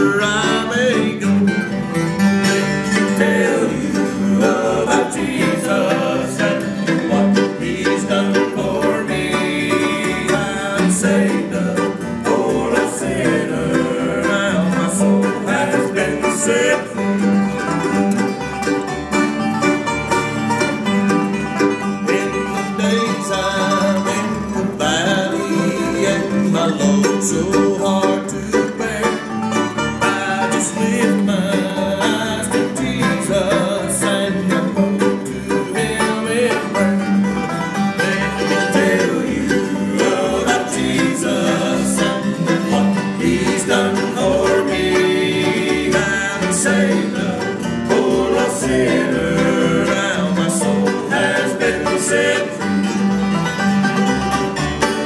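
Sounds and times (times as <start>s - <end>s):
acoustic guitars: 0.0s - 55.0s
banjos: 0.0s - 55.0s
bluegrass band playing: 0.0s - 55.0s
mandolin: 0.0s - 55.0s
upright bass plucking: 0.0s - 55.0s.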